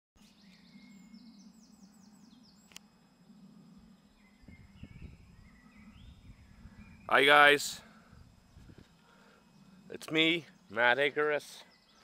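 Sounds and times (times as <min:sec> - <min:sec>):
faint birdsong: 0:00.2 - 0:12.0
low steady hum: 0:00.3 - 0:12.0.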